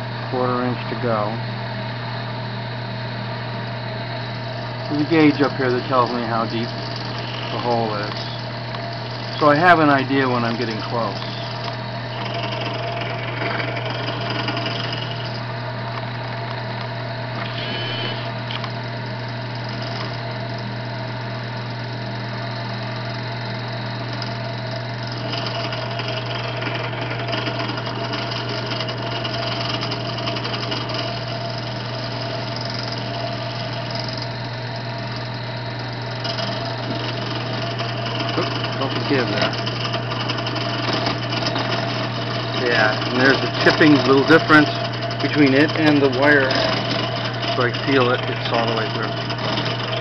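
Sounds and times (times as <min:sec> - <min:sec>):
drill press motor hum: 0:00.0 - 0:50.0.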